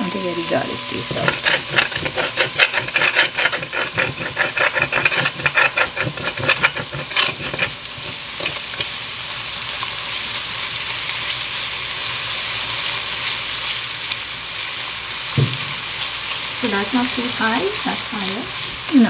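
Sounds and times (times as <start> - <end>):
garlic sizzling in oil: 0.0 - 19.0
spoon stirring in pot: 0.4 - 9.0.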